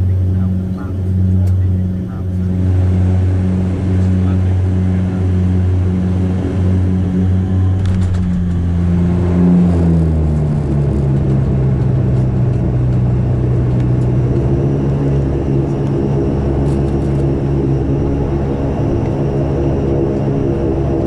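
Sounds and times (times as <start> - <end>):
propeller engine droning: 0.0 - 21.0.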